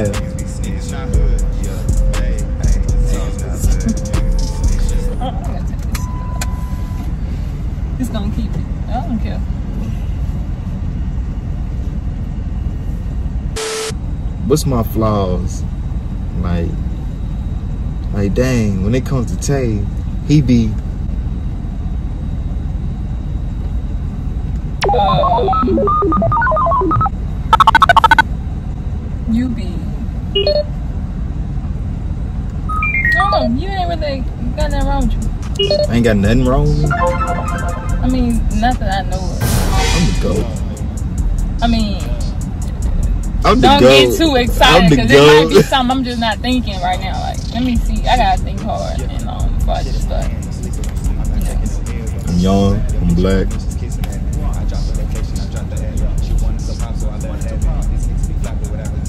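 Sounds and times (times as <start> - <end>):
low rumble inside car cabin: 0.0 - 59.0
two-note electronic beep: 24.8 - 28.2, 32.7 - 33.6, 35.6 - 38.5.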